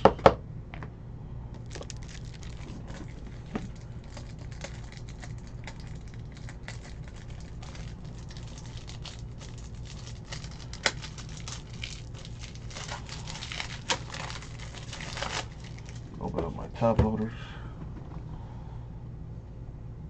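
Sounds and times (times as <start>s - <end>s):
steady low hum: 0.0s - 20.0s
trading cards rustling and clicking: 1.6s - 16.6s.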